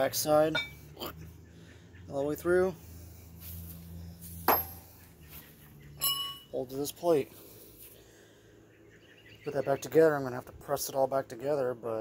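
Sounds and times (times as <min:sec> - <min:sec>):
metallic clink: 0:04.5 - 0:04.8, 0:06.0 - 0:06.6.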